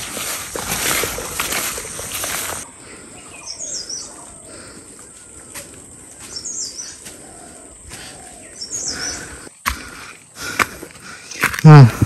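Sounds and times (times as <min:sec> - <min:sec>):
leaves and stems rustling: 0:00.0 - 0:02.7
outdoor background: 0:00.0 - 0:12.0.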